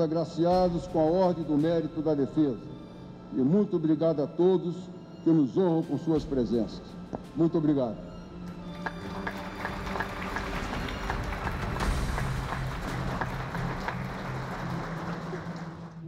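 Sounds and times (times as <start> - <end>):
background music: 0.0 - 16.0
audience applauding: 8.7 - 16.0.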